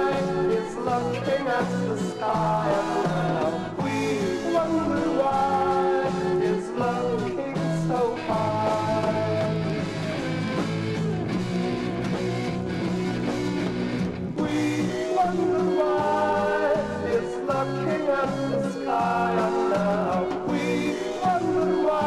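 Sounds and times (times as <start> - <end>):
psychedelic rock band music: 0.0 - 22.0.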